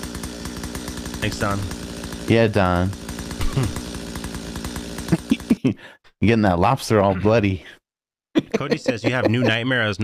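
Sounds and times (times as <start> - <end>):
chainsaw running: 0.0 - 5.8.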